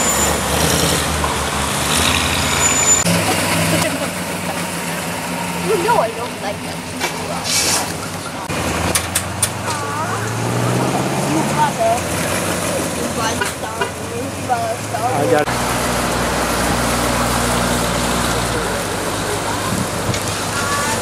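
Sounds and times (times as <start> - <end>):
car engines running at low speed: 0.0 - 21.0
low engine hum: 0.0 - 21.0
people talking: 3.1 - 8.5, 9.6 - 12.2, 12.8 - 15.5, 16.9 - 21.0.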